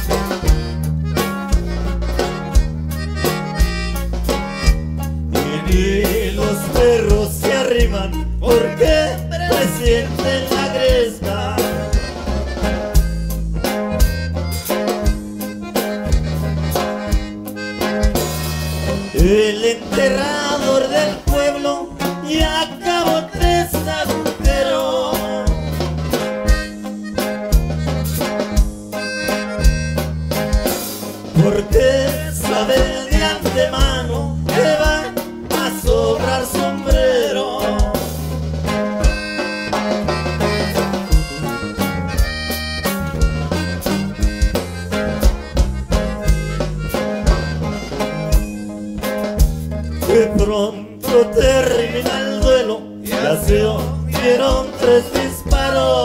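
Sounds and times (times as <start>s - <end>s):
accordion melody: 0.0s - 56.0s
band playing steady beat: 0.0s - 56.0s.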